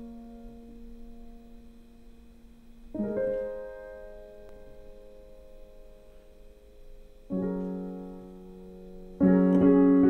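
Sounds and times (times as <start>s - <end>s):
digital piano chord: 0.0s - 10.0s.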